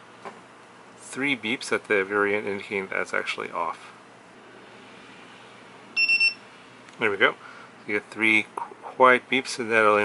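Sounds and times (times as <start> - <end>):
faint room hiss: 0.0 - 10.0
short high beeps: 6.0 - 6.4.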